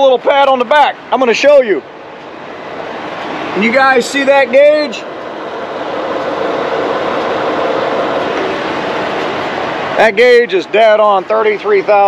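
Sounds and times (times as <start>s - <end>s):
machinery running: 2.0s - 12.0s.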